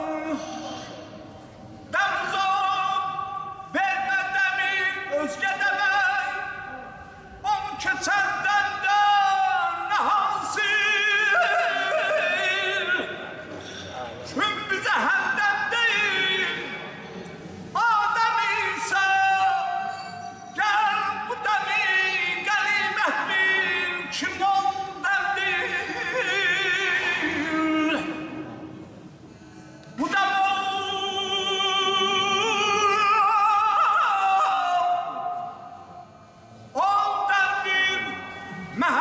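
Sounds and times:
man singing unaccompanied: 0:01.9 - 0:13.3, 0:14.3 - 0:17.0, 0:17.8 - 0:19.9, 0:20.6 - 0:28.5, 0:30.0 - 0:35.6, 0:36.7 - 0:39.0.

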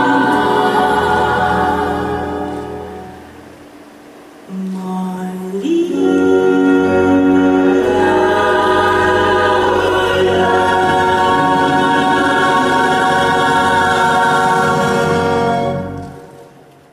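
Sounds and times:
sustained accompaniment chord: 0:00.0 - 0:04.5, 0:05.4 - 0:16.6
woman singing a held note: 0:04.5 - 0:08.3.

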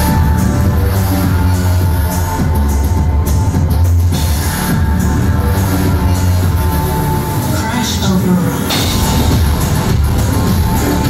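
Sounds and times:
band playing industrial electronic music: 0:00.0 - 0:11.0
voice in music: 0:00.0 - 0:11.0.

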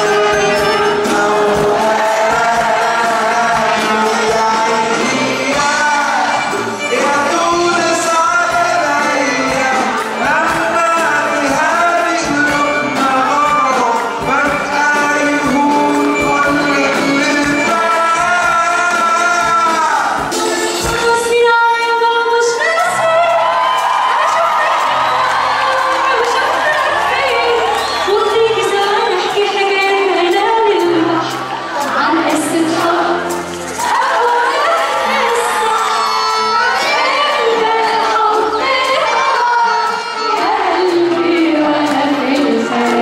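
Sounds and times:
man singing into a microphone: 0:00.0 - 0:20.3
crowd cheering and singing along: 0:00.0 - 0:43.0
drums: 0:00.0 - 0:43.0
live band playing: 0:00.0 - 0:43.0
woman singing into a microphone: 0:21.0 - 0:23.5, 0:24.2 - 0:43.0.

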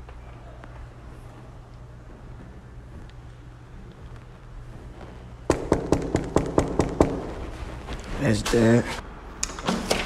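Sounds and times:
knuckles knocking on door: 0:05.5 - 0:07.3.

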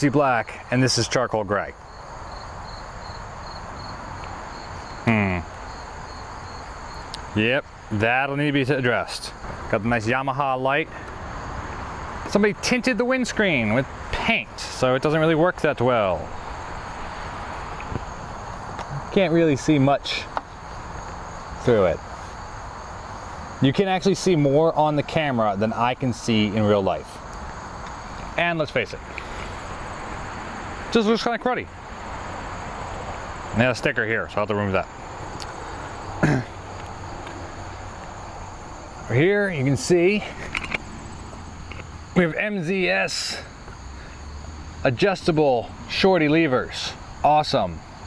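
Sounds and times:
steady hiss: 0:00.0 - 0:48.0
high-pitched insect chirring: 0:01.7 - 0:08.6, 0:34.5 - 0:45.8
high insect buzz: 0:01.8 - 0:09.7, 0:16.0 - 0:33.7, 0:34.3 - 0:45.9, 0:46.9 - 0:48.0
man humming: 0:05.1 - 0:05.5.

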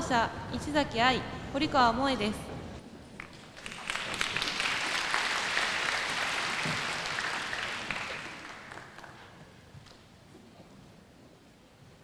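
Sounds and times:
audience applauding: 0:03.2 - 0:09.4.

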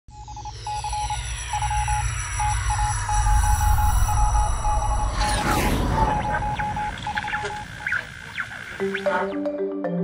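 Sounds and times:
electronic beeps: 0:00.1 - 0:09.6.

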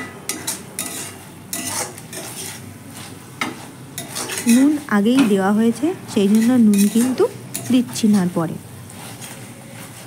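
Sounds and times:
light sizzle of frying: 0:00.0 - 0:10.0
spatula scraping metal pan: 0:00.3 - 0:04.8, 0:06.2 - 0:08.2.

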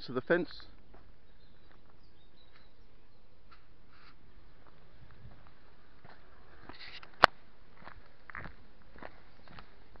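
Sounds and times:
footsteps on gravel: 0:00.6 - 0:02.7, 0:03.5 - 0:10.0.

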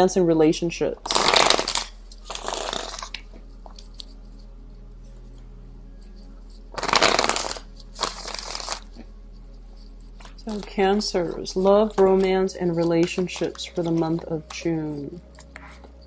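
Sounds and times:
cards being shuffled: 0:01.0 - 0:04.2, 0:06.6 - 0:09.0, 0:09.7 - 0:16.0.

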